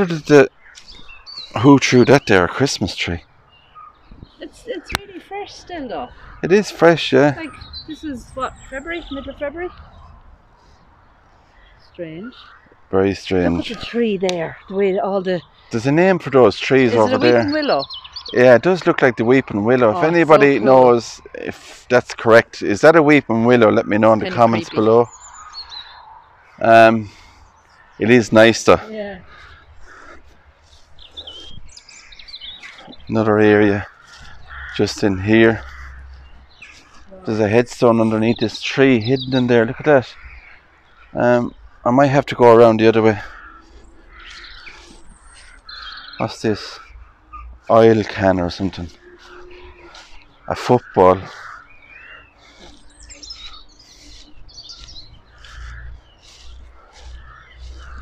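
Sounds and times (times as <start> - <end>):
small songbird twittering: 0.0 - 21.4, 23.1 - 58.0
small birds chirping: 0.0 - 58.0.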